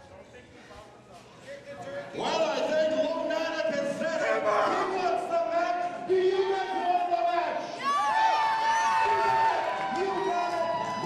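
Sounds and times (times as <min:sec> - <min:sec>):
crowd shouting and yelling: 0:04.0 - 0:11.0.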